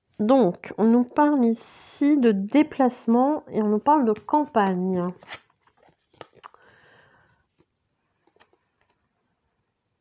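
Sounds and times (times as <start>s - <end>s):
cards sliding rustle: 4.1s - 6.5s, 7.5s - 9.0s.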